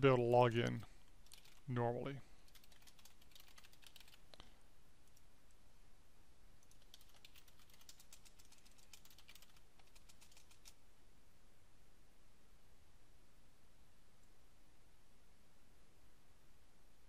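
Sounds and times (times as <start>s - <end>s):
faint keyboard typing: 0.5s - 5.6s, 6.6s - 10.8s.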